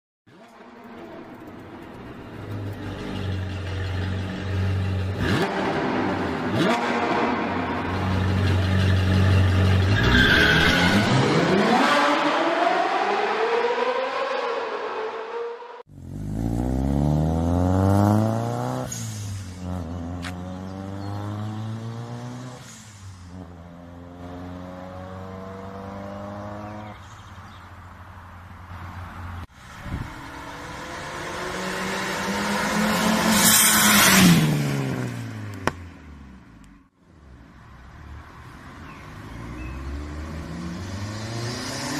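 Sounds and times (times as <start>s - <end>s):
car engine revving: 0.4s - 22.8s, 23.4s - 27.0s, 30.0s - 36.5s
car accelerating through gears: 5.1s - 14.6s, 16.0s - 22.8s, 30.0s - 35.7s.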